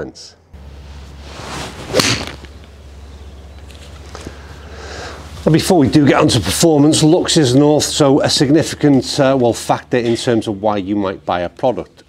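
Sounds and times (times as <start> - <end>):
steady low hum: 0.3 - 12.0
golf club swing whoosh: 0.6 - 5.5
golf iron striking ball: 1.8 - 4.0.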